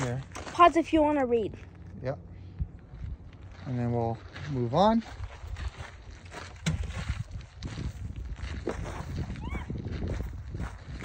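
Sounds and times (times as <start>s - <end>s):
footsteps on gravel: 0.0s - 1.9s, 2.6s - 11.0s
wind rumble on microphone: 2.4s - 3.6s, 5.0s - 11.0s.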